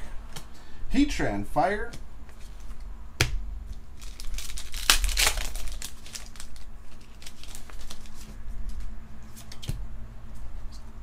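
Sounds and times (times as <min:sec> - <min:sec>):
foil wrapper crinkling and tearing: 0:04.0 - 0:08.4.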